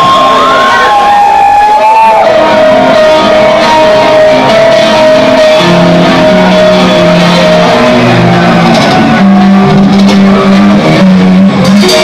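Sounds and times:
distorted electric guitars: 0.0s - 12.0s
thrash metal band playing live: 0.0s - 12.0s.

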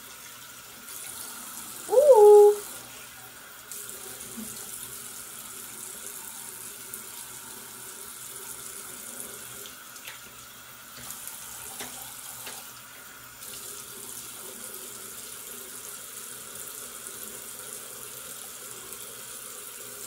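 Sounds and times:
hands rinsing face: 1.9s - 2.6s.

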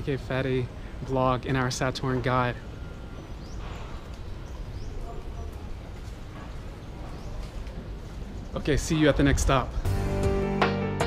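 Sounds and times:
small birds chirping: 0.0s - 9.8s.

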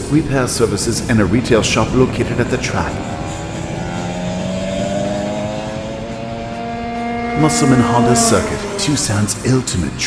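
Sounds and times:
kart engine at high revs: 1.2s - 10.0s.

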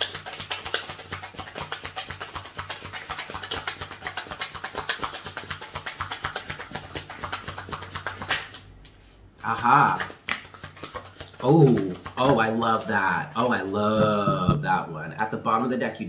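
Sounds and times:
cards being shuffled: 0.0s - 13.7s.

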